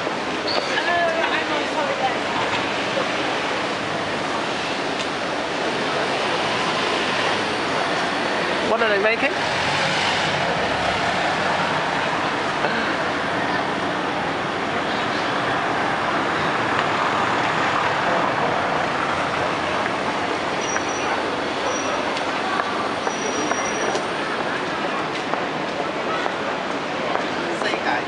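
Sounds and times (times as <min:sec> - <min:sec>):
indistinct crowd voices: 0:00.0 - 0:28.0
traffic noise: 0:00.0 - 0:28.0.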